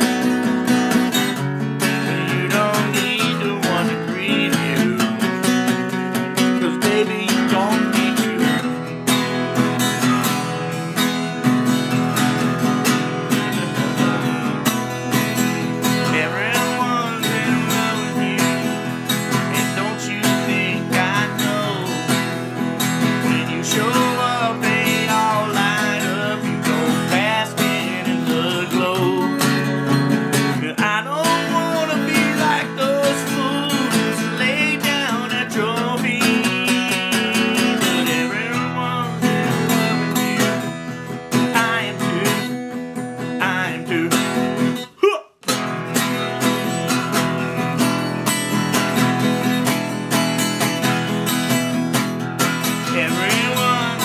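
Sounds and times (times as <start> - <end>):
acoustic guitar strumming: 0.0 - 54.0
man singing: 1.7 - 10.6, 13.3 - 45.6, 52.6 - 54.0.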